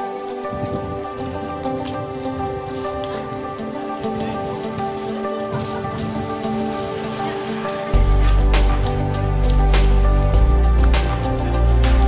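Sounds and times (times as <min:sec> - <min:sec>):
loud bass line: 0:08.0 - 0:12.0.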